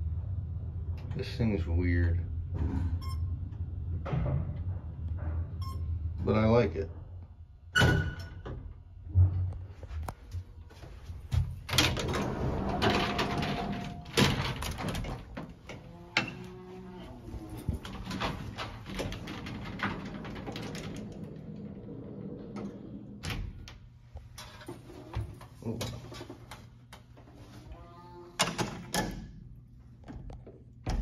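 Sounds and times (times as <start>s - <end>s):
elevator gate rattling: 11.7s - 16.3s, 17.4s - 23.7s.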